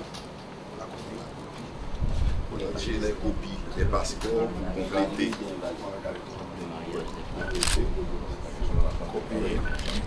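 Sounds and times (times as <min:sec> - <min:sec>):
murmur of voices: 0:00.5 - 0:10.0
camera shutter click: 0:07.5 - 0:07.9.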